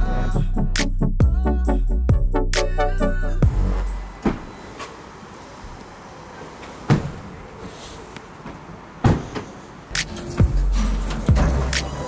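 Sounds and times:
car doors shutting: 0:03.7 - 0:12.0.

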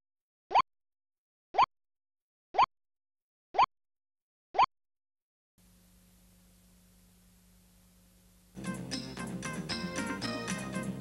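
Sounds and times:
faint steady hum: 0:05.6 - 0:11.0.

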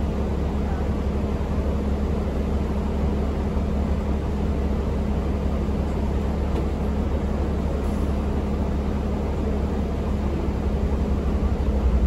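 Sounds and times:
diesel bus engine drone: 0:00.0 - 0:12.0.

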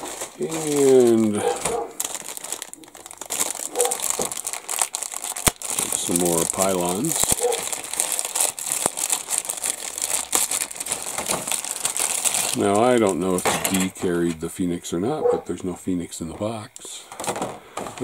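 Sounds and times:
plastic bag crinkling: 0:00.0 - 0:14.4, 0:17.1 - 0:18.0.

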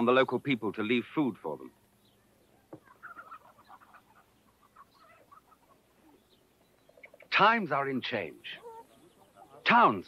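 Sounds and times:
faint chickens clucking: 0:01.4 - 0:10.0.

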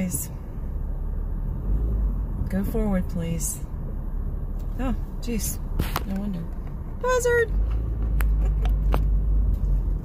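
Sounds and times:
car engine and road drone: 0:00.0 - 0:10.0.

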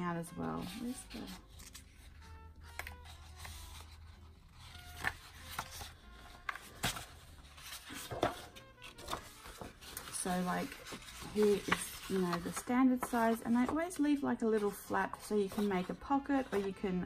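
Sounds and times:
paper crackles: 0:00.4 - 0:17.0
paper rustling and flapping: 0:00.5 - 0:17.0.

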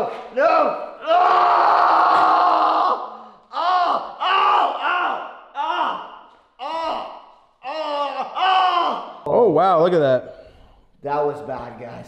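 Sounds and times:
man crying out in pain: 0:06.6 - 0:09.2.

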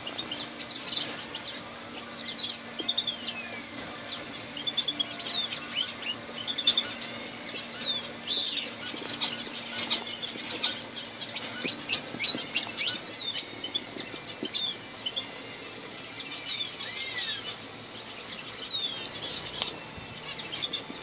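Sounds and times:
finches and canaries chirping: 0:00.0 - 0:21.0.

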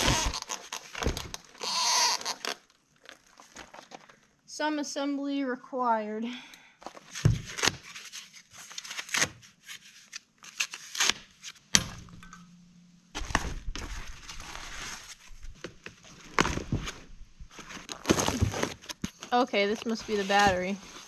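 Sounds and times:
packing material rustling: 0:00.0 - 0:04.3, 0:13.1 - 0:21.0.

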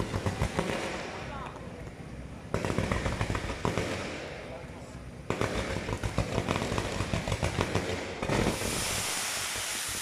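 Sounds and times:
fireworks crackling and popping: 0:00.0 - 0:10.0.

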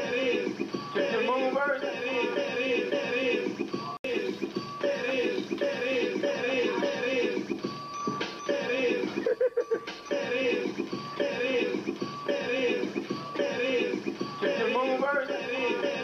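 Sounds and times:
electronic dance music with vocals: 0:00.0 - 0:16.0.

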